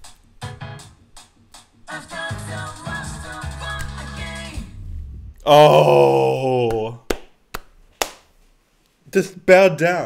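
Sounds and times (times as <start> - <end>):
person clapping hands: 6.6 - 8.3.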